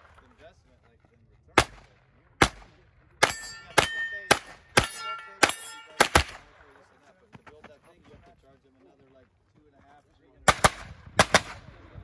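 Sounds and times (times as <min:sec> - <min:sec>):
rifle shots: 0:01.6 - 0:06.6, 0:10.5 - 0:11.8
metallic ring of steel targets: 0:03.2 - 0:06.4.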